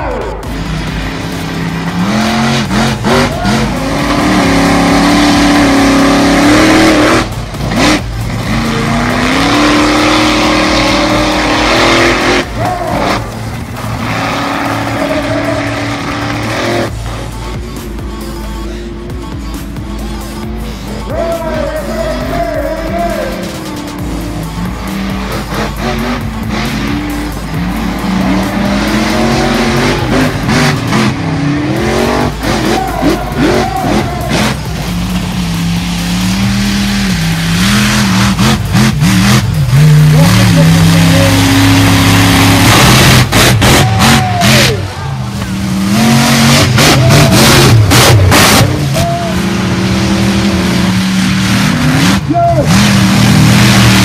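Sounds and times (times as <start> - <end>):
monster truck engines revving: 0.0 - 54.0.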